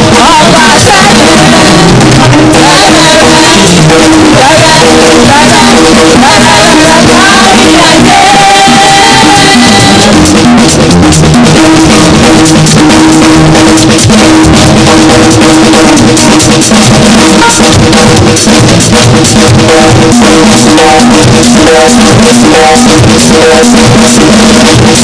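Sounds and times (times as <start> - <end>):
bass: 0.0 - 25.0
drum kit beat: 0.0 - 25.0.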